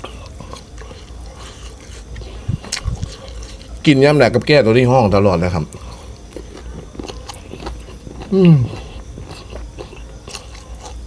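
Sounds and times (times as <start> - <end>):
person chewing food: 0.0 - 3.8, 5.7 - 11.0.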